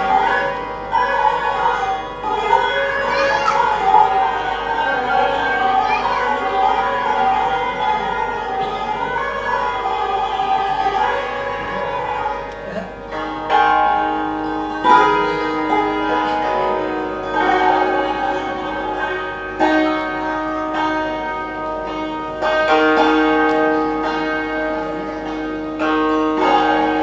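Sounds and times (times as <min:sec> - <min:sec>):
hammered dulcimer playing: 0:00.0 - 0:27.0.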